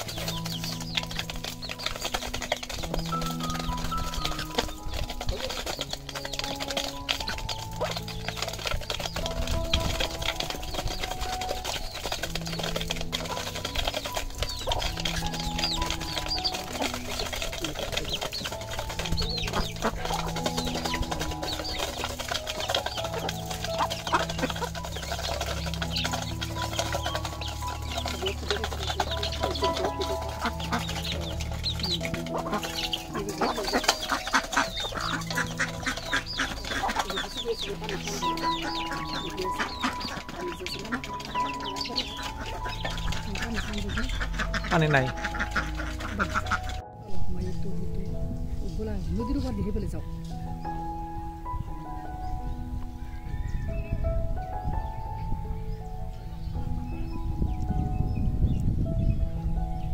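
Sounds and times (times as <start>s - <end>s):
beaks tapping on metal pan: 0.0s - 46.8s
chickens clucking: 0.0s - 46.8s
slow background music: 0.0s - 59.9s.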